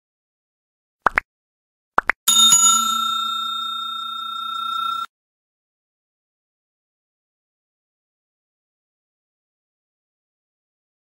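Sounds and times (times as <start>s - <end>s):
notification bell chime: 2.3s - 5.1s.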